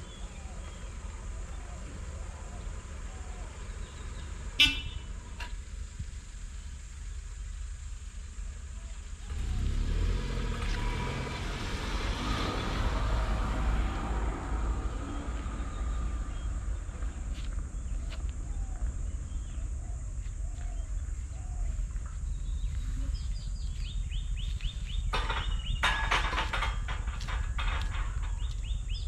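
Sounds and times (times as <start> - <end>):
car engine and tyre noise: 0.0 - 29.0
car horn toot: 4.6 - 5.2.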